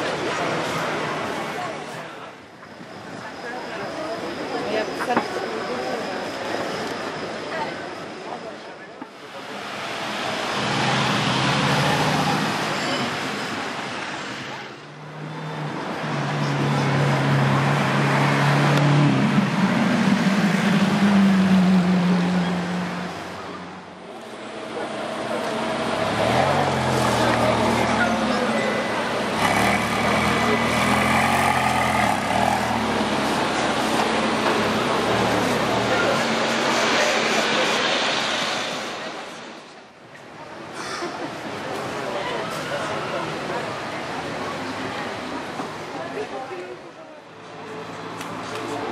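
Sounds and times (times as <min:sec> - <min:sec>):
crowd voices: 0:00.0 - 0:48.9.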